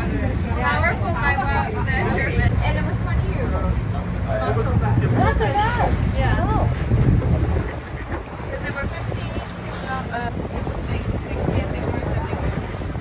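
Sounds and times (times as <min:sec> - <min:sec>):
boat motor: 0:00.0 - 0:13.0
voices: 0:00.0 - 0:13.0
wind buffeting microphone: 0:00.0 - 0:13.0.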